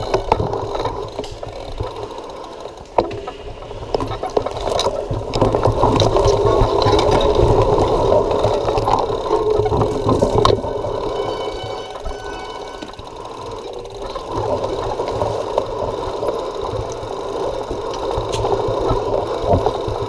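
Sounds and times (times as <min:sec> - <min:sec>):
mountain bike rattle and tyre rumble: 0:00.0 - 0:20.0.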